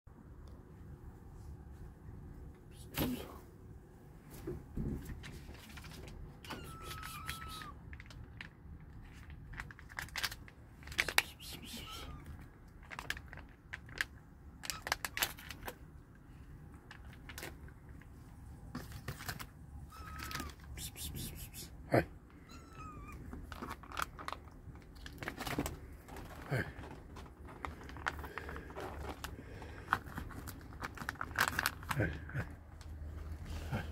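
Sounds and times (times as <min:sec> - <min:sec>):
kitten meowing: 0:06.4 - 0:07.8, 0:11.5 - 0:12.4, 0:19.9 - 0:21.6, 0:22.4 - 0:23.3.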